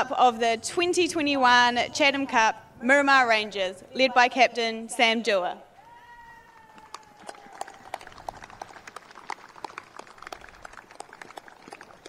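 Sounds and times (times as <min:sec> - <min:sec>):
scattered applause: 0:05.8 - 0:12.0.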